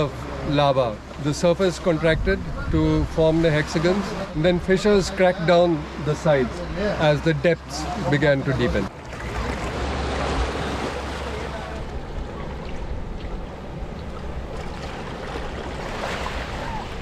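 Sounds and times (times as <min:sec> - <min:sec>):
sea waves breaking on shore: 0:00.0 - 0:17.0
wind rumbling on microphone: 0:02.0 - 0:03.5.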